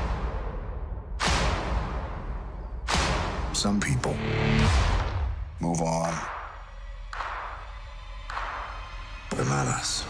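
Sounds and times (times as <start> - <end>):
sharp percussive hits: 2.8 - 3.6, 6.2 - 9.2.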